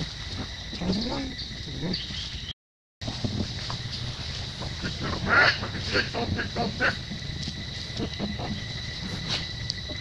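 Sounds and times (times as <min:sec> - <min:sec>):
monkey harsh cries: 0:04.8 - 0:07.0.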